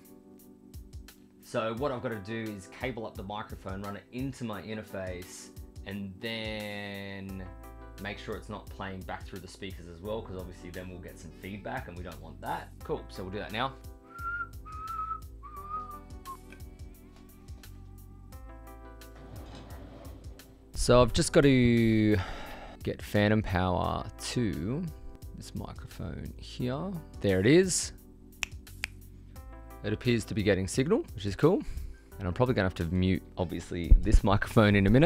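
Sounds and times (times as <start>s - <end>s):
background music with steady beat: 0.0s - 35.0s
person whistling: 14.1s - 16.6s
finger snaps: 16.4s - 16.7s, 28.4s - 29.1s.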